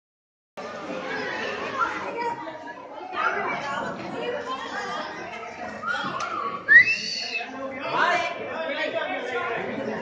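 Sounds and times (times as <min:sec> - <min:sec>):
group of people chattering: 0:00.6 - 0:10.0.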